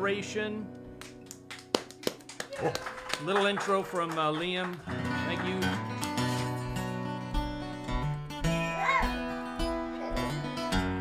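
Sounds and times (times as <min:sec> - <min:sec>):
light hand claps: 0:01.0 - 0:07.0.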